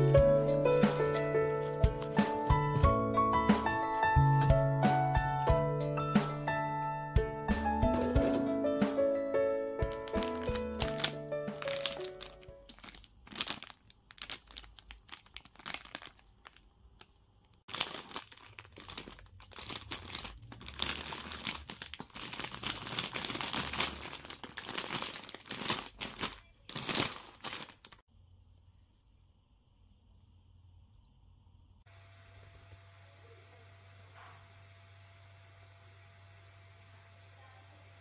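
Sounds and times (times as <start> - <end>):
plastic wrappers crinkling: 9.8 - 28.0.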